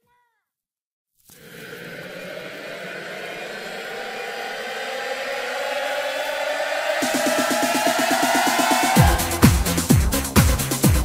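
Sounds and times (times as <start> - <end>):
synthesizer riser: 1.3 - 10.3
house music beat: 2.2 - 11.0.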